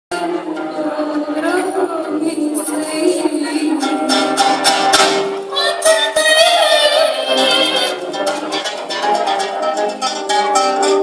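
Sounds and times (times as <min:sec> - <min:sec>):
acoustic ensemble music: 0:00.1 - 0:11.0
plucked guitar strings: 0:00.1 - 0:11.0.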